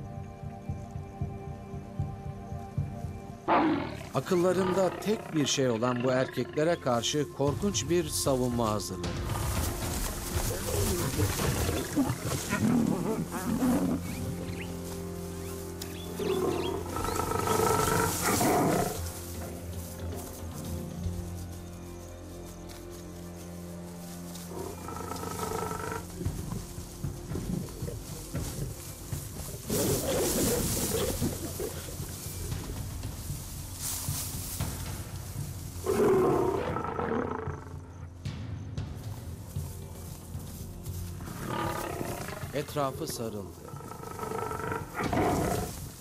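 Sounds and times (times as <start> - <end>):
background music with low notes: 0.0 - 46.0
lions snarling and roaring: 9.2 - 14.7, 16.2 - 19.1, 24.5 - 26.2, 27.2 - 32.7, 35.8 - 38.0, 41.2 - 42.6, 43.6 - 45.9.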